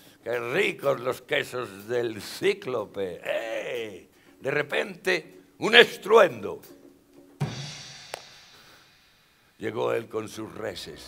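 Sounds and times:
percussion crash with drum boom: 0:06.7 - 0:09.4.

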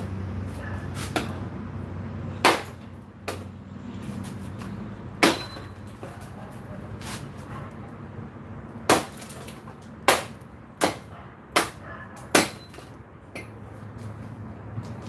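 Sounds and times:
hatchet chopping wood: 0:02.4 - 0:03.5, 0:05.2 - 0:06.2, 0:08.8 - 0:13.6.

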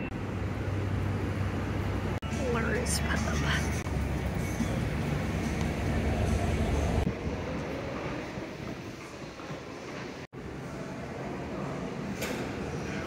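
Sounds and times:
even background hum: 0:00.0 - 0:07.2
city traffic rumble: 0:00.0 - 0:10.6
elevated train running: 0:00.0 - 0:11.8.

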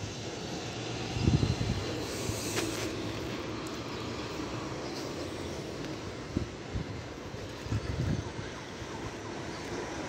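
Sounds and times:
distant traffic: 0:00.0 - 0:10.0
wind rushing: 0:01.0 - 0:03.0
wind bumps on microphone: 0:01.1 - 0:02.7, 0:07.6 - 0:08.5.

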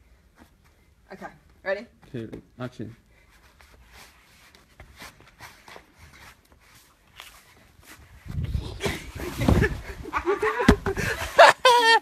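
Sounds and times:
light footsteps and scuffs: 0:00.2 - 0:08.5.

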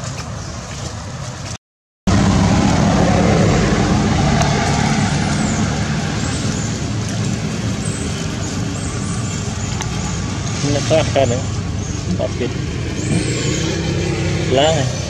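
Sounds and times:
road noise: 0:00.0 - 0:15.0
motor vehicle rumbling: 0:02.1 - 0:15.0.

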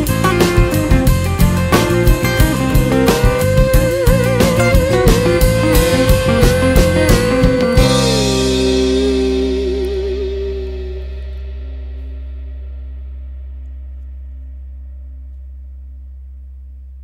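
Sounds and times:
electric guitar with echo: 0:00.0 - 0:13.7
held bass note: 0:00.0 - 0:17.0.

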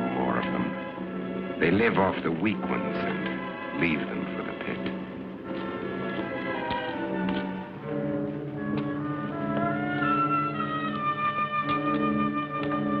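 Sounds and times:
orchestral score with sustained brass: 0:00.0 - 0:13.0.

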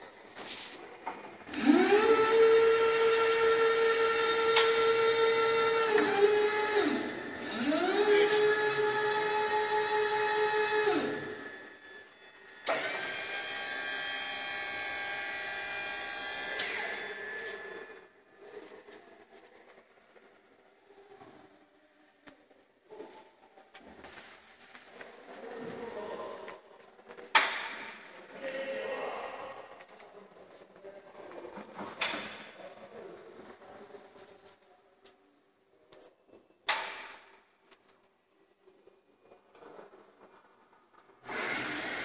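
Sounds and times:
hydraulic lift motor whining: 0:01.5 - 0:18.1, 0:41.2 - 0:42.0.

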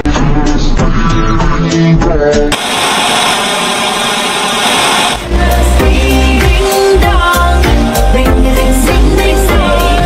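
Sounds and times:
static hiss: 0:02.5 - 0:05.4.

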